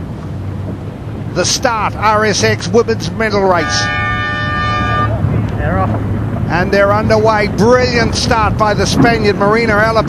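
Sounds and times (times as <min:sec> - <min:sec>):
race starting horn: 0:03.4 - 0:05.3
wind on microphone: 0:03.8 - 0:10.0.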